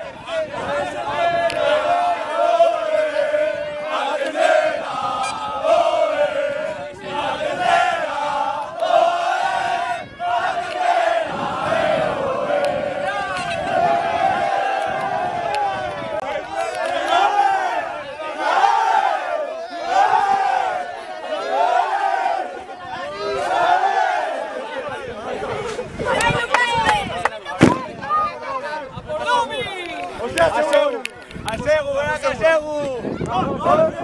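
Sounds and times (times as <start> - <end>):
men chanting and shouting: 30.1 - 34.0.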